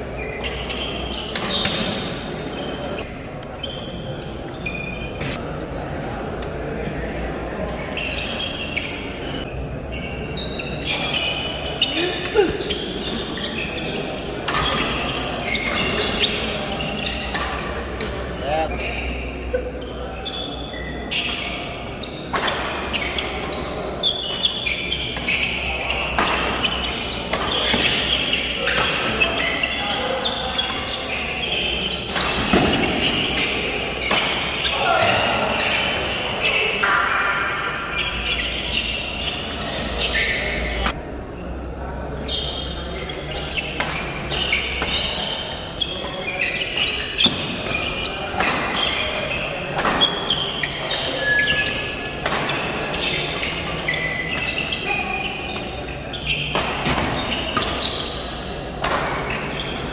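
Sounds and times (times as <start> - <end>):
crowd chatter and calls: 0.0 - 59.9
badminton rackets hitting shuttlecock: 26.1 - 29.6, 30.4 - 35.9, 43.4 - 45.4, 46.0 - 55.8, 56.4 - 58.0, 58.8 - 59.6.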